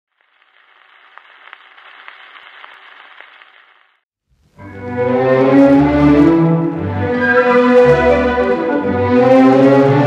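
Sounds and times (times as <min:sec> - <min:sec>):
record surface hiss and crackle: 0:00.1 - 0:04.7.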